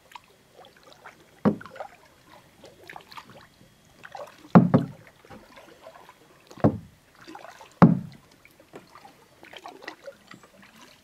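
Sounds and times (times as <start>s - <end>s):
paddle in water: 0.0s - 11.0s
paddle knocking on kayak hull: 1.4s - 1.8s, 4.5s - 5.5s, 6.6s - 6.9s, 7.8s - 8.2s.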